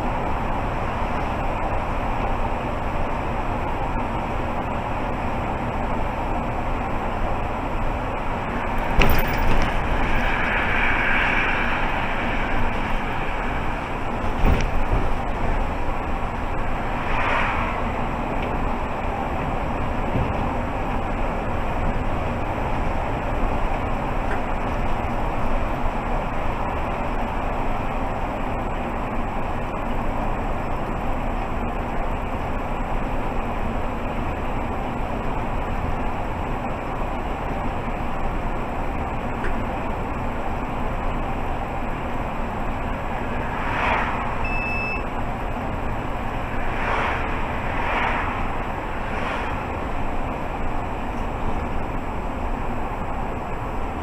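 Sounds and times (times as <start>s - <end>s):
bus engine and tyre noise: 0.0s - 54.0s
cars passing with whooshes: 0.0s - 54.0s
short beep: 44.4s - 45.1s.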